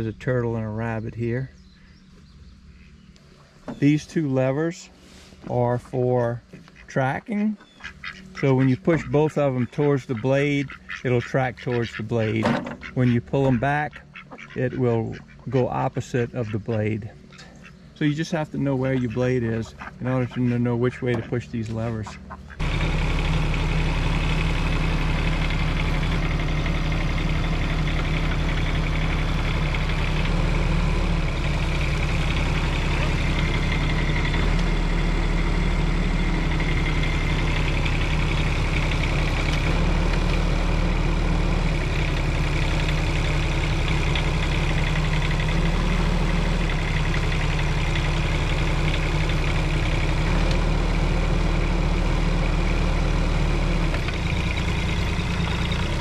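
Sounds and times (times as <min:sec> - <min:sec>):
excavator diesel engine running: 0:00.0 - 0:56.0.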